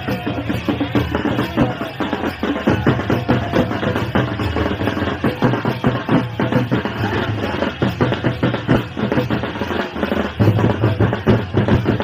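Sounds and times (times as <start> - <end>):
barrel drum beaten rhythmically: 0.0 - 12.0.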